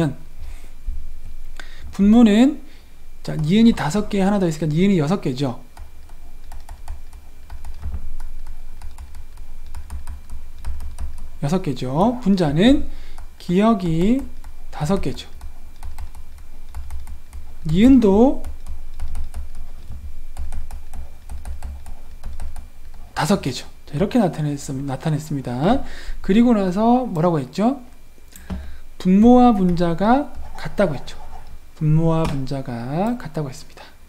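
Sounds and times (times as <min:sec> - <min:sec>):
steady low hum: 0:00.0 - 0:34.0
stylus tapping on pen tablet: 0:05.7 - 0:11.4, 0:13.0 - 0:23.0.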